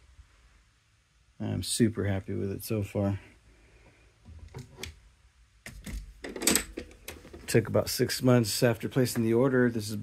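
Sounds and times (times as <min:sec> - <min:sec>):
metal mechanical clicks and clunks: 0:05.7 - 0:07.4.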